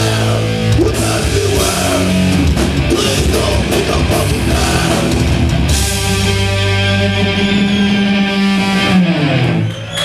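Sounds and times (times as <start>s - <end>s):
thrash band playing live: 0.0s - 10.0s.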